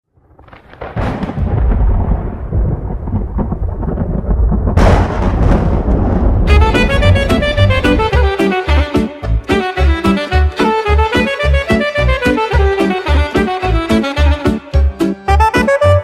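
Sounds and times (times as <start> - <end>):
thunder rumbling: 0.2 - 9.0
thunder crack: 0.4 - 9.1
instrumental music: 6.5 - 16.0.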